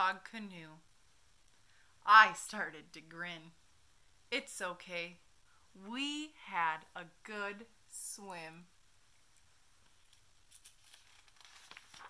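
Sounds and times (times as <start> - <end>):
soft paper crinkles: 9.1 - 12.0
paper pages rustling: 9.4 - 12.0.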